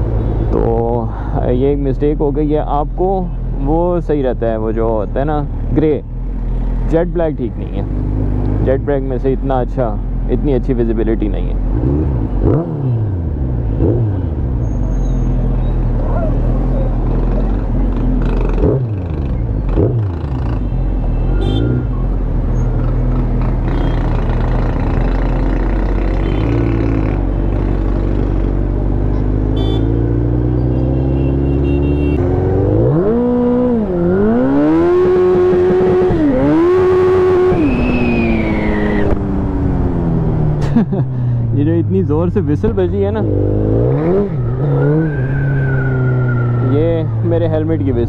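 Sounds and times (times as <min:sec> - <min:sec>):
motorcycle engine accelerating: 0:15.3 - 0:20.7, 0:21.7 - 0:40.8, 0:42.2 - 0:47.7.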